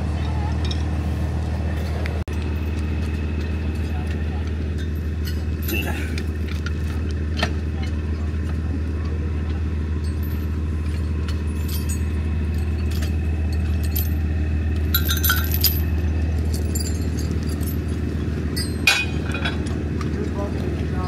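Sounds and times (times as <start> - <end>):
diesel engine idling: 0.0 - 21.0
metal chain clinks: 4.7 - 6.4, 9.8 - 19.6.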